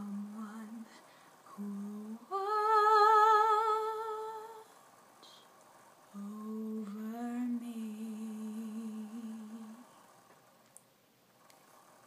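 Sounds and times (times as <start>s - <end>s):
woman singing unaccompanied: 0.0s - 4.7s, 6.1s - 9.9s.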